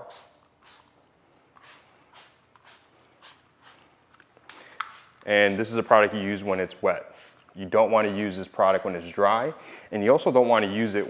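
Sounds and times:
spray bottle hissing sprays: 0.0 - 3.9, 4.5 - 11.0.

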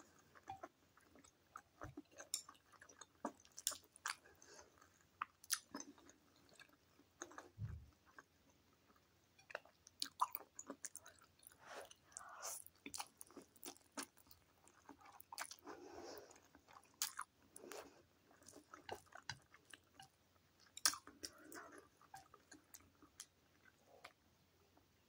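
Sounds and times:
wet chewing of noodles: 0.0 - 24.2.

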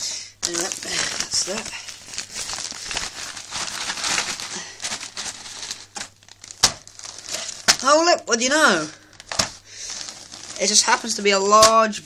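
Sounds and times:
plastic bag crinkling: 0.0 - 12.0
sharp plastic crackles: 0.0 - 12.0.

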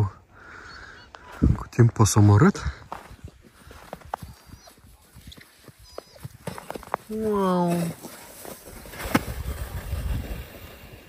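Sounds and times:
sled runners scraping on snow: 2.9 - 11.0.

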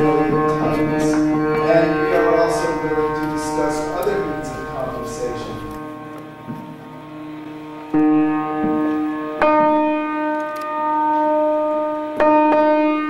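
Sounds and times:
slow keyboard chords: 0.0 - 13.0.

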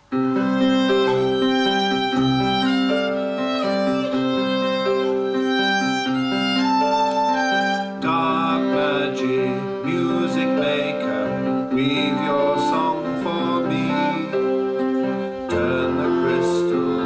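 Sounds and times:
violin: 0.0 - 17.0
folk band playing a slow tune: 0.2 - 17.0.

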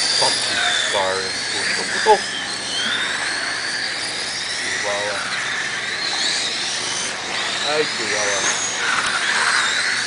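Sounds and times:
rc car motors whining: 0.0 - 10.0.

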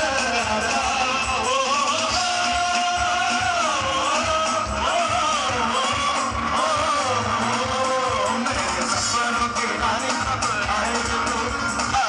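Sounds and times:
live band with singing and guitar: 0.0 - 12.0.

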